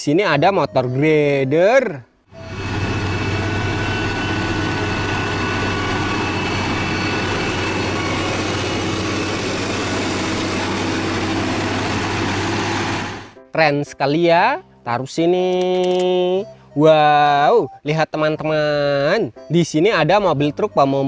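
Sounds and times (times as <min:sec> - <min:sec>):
diesel engine running under load: 0:02.3 - 0:13.4.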